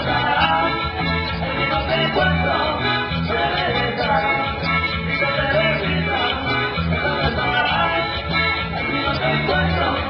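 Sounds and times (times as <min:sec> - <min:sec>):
live latin dance band: 0:00.0 - 0:10.0
person singing: 0:00.0 - 0:10.0
repeating bass line: 0:00.0 - 0:10.0.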